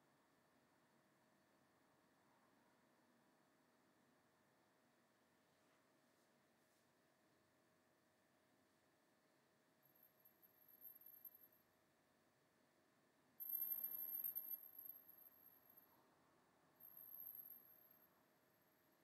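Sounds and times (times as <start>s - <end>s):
faint high-pitched whine: 0.0s - 19.0s.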